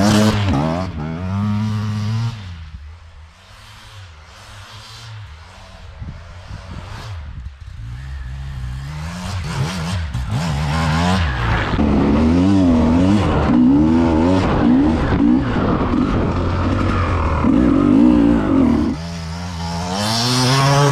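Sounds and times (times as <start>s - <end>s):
motorcycle engine revving: 0.0s - 20.9s.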